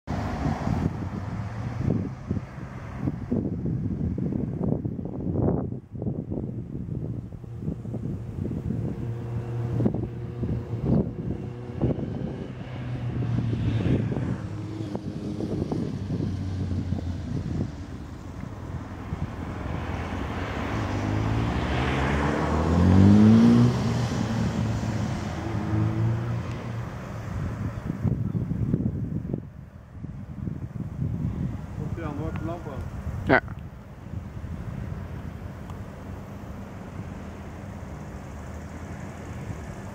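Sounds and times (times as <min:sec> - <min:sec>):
vehicle engine passing: 0:00.1 - 0:04.8, 0:05.4 - 0:33.2
wind buffeting microphone: 0:00.1 - 0:39.9.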